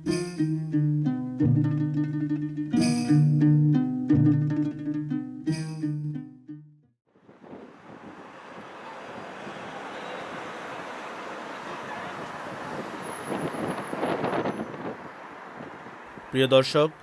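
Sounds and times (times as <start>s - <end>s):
tyres and wind road noise: 7.1s - 17.0s.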